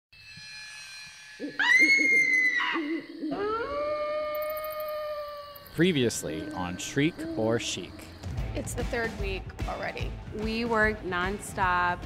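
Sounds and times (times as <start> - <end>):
eerie held tones: 0.2 - 8.3
loud high sustained tone: 0.2 - 8.3
owl hooting: 1.4 - 8.2.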